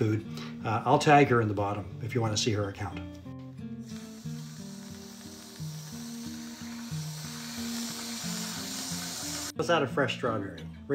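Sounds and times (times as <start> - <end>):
background music with low notes: 0.0 - 10.9
whipped cream aerosol spraying: 3.8 - 9.6.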